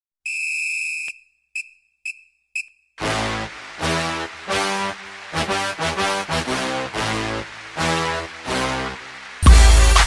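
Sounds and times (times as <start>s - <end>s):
short whistle toot: 0.2s - 2.8s
whistle blast: 0.2s - 2.8s.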